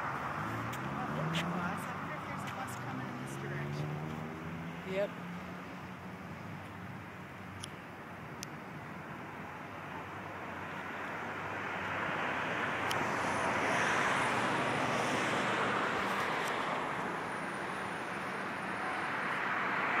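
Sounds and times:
vehicle passing: 0.0s - 7.2s, 9.2s - 20.0s.

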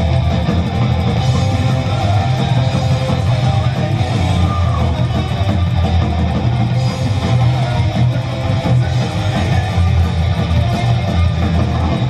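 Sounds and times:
drums: 0.0s - 12.0s
electric guitar strumming: 0.0s - 12.0s.

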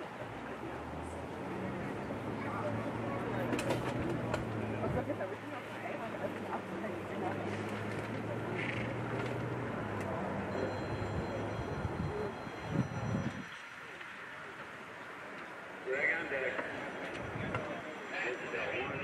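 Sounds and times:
people talking indistinctly: 15.8s - 19.0s.

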